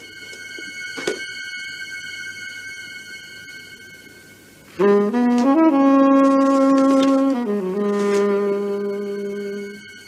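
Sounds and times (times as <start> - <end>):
high ringing chord: 0.0 - 7.1, 8.3 - 10.0.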